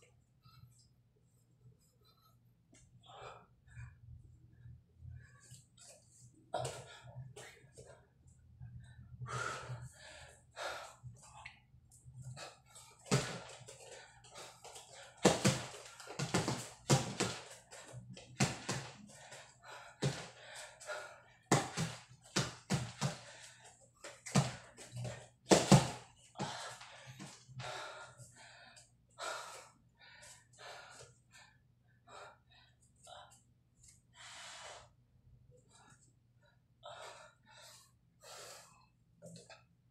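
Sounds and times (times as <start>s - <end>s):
man breathing hard: 1.8s - 39.5s.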